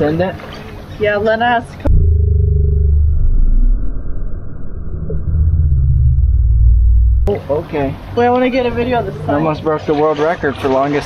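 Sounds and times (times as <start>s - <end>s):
deep muffled rumbling drone: 1.8s - 9.4s.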